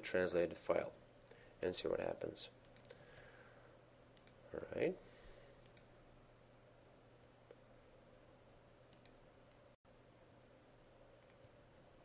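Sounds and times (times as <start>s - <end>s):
low steady hum: 0.0s - 12.0s
computer mouse clicks: 2.6s - 3.3s, 4.2s - 4.4s, 5.6s - 5.9s, 8.9s - 9.2s, 11.2s - 11.6s.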